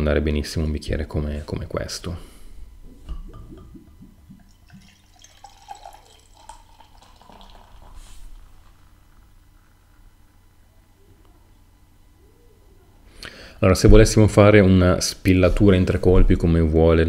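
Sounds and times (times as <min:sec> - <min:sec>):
beer pouring into glass: 0:04.3 - 0:09.8.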